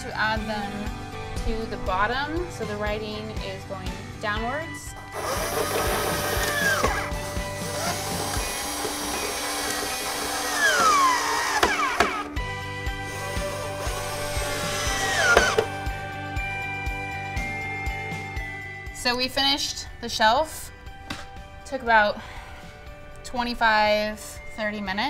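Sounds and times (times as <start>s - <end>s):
background music with steady beat: 0.0s - 25.0s
cordless drill driving screws: 5.0s - 15.8s.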